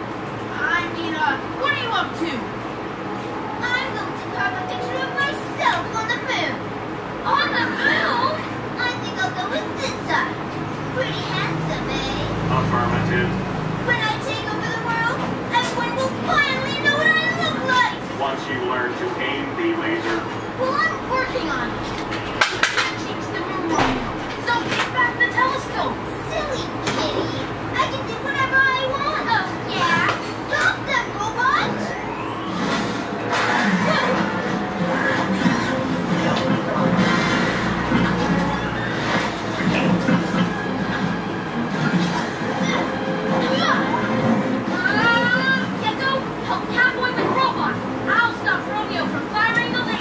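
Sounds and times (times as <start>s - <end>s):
high-pitched voices squealing: 29.0s - 47.2s.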